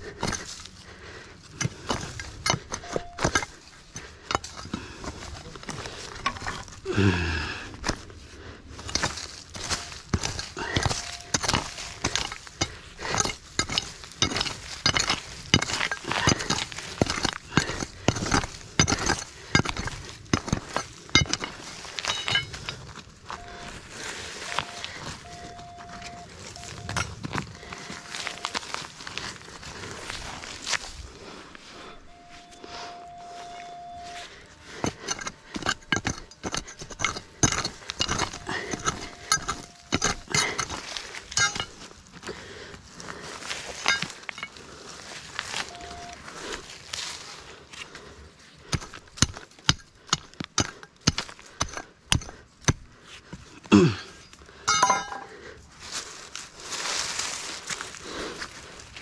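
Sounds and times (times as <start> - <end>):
hands digging soil and stones: 0.0 - 59.0
short steady tone: 24.5 - 27.0, 31.9 - 34.2
stones clicking together: 34.8 - 41.8.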